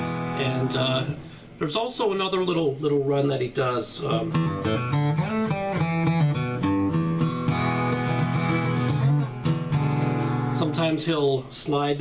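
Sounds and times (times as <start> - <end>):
acoustic guitar blues run: 0.0 - 12.0.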